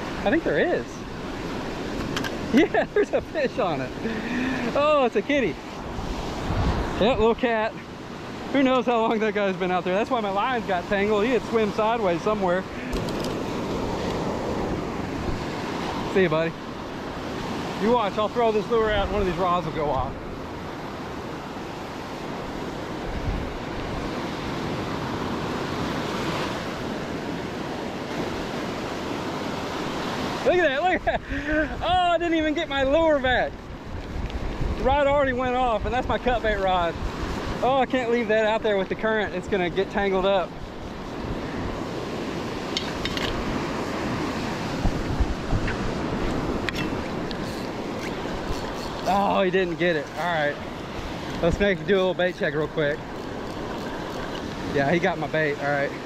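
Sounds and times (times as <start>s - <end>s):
wind buffeting microphone: 0.0s - 8.6s, 9.3s - 27.4s, 28.2s - 56.0s
waves breaking on beach: 0.0s - 56.0s.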